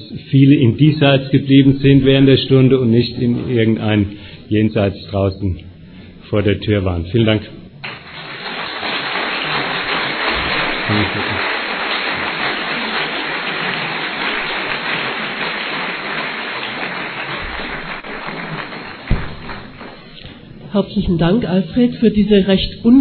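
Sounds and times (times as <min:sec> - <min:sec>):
audience applauding: 0:07.8 - 0:20.3
single thump: 0:19.1 - 0:19.6.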